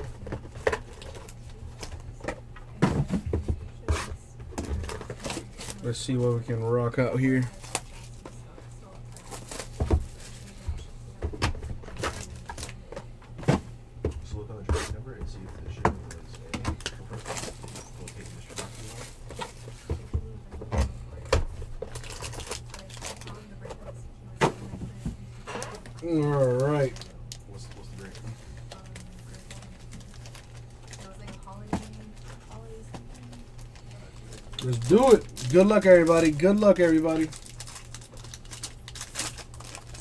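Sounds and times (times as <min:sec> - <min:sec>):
cardboard box and packs handled: 0:03.9 - 0:06.4, 0:14.8 - 0:20.1, 0:20.8 - 0:23.4, 0:25.6 - 0:40.0.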